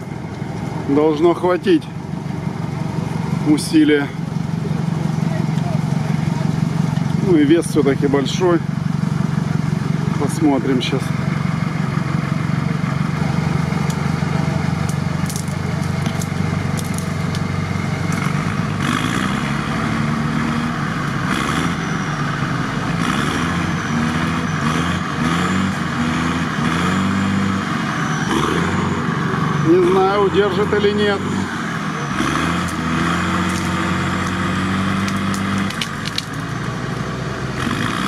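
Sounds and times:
heavy truck engines revving: 0.0 - 38.0.

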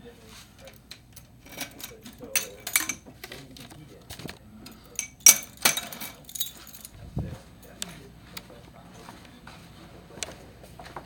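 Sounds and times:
keys jangling: 0.6 - 3.0, 3.6 - 7.0.

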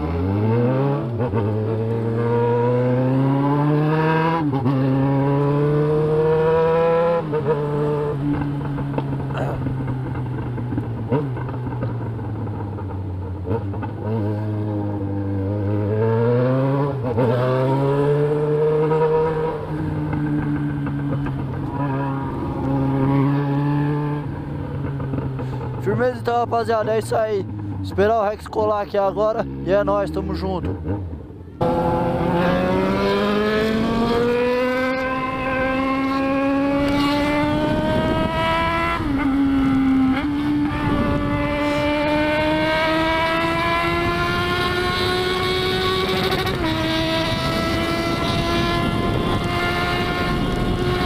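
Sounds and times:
motorcycle engine accelerating: 0.0 - 51.0.

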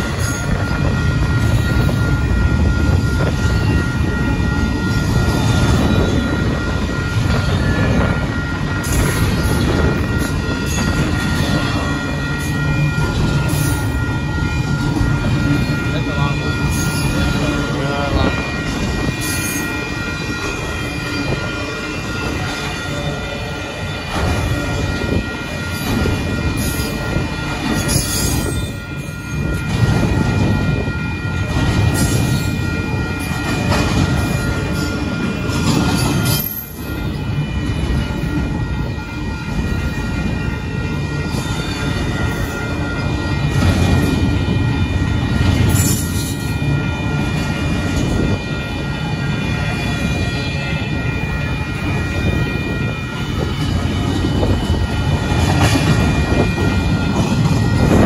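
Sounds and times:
crossing warning bell ringing: 0.0 - 58.0
freight train wheels rumbling: 0.0 - 58.0.

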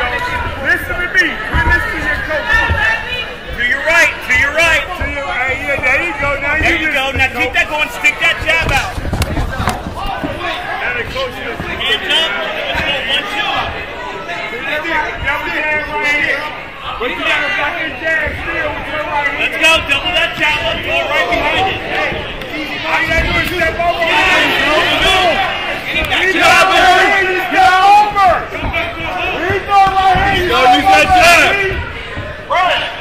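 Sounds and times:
background chatter: 0.0 - 33.0
crowd shouting and yelling: 0.0 - 33.0
men shouting: 17.1 - 33.0.

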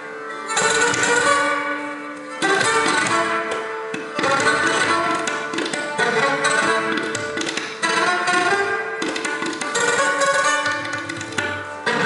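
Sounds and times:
sitar: 0.0 - 12.0
tabla strokes: 0.0 - 12.0
violin: 0.0 - 12.0.

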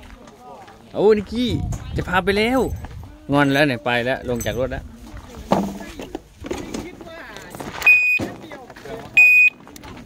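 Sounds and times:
electronic beep: 7.8 - 8.3, 9.2 - 9.6.

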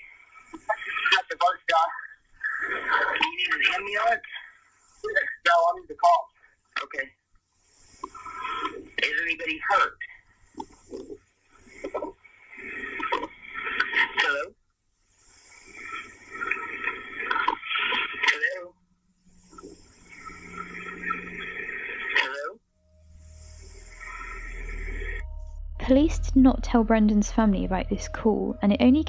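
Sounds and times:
muffled voice over phone call: 1.0 - 2.1, 2.8 - 4.5, 5.1 - 6.2, 6.8 - 7.1, 9.0 - 10.1, 14.0 - 14.5, 18.2 - 18.7, 22.2 - 22.6
low drone: 19.2 - 29.0.

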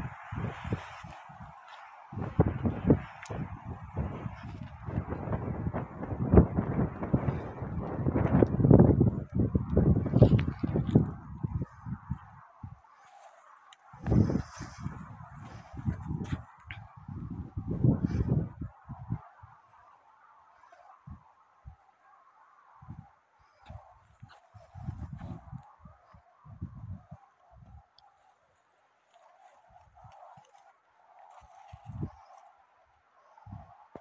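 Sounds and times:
wind buffeting microphone: 0.0 - 13.2, 13.8 - 21.9, 22.8 - 27.9, 29.2 - 32.4, 33.3 - 34.0
steady rush of wind: 0.0 - 34.0.

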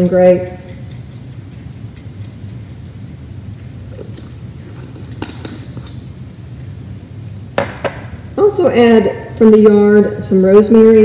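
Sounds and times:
low room hum: 0.0 - 11.0
spice shaker rattling: 0.6 - 6.1.

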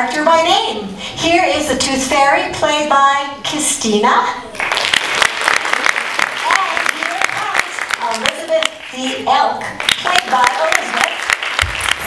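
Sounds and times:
audience clapping: 4.6 - 12.0.

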